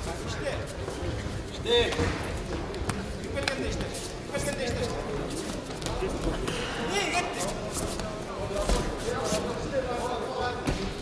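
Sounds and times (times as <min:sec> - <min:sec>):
hall hubbub: 0:00.0 - 0:11.0.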